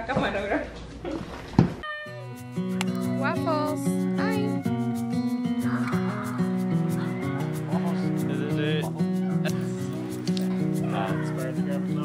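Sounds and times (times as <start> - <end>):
background music with steady beat: 2.2 - 12.0
dog whimpering and yipping: 4.5 - 7.6.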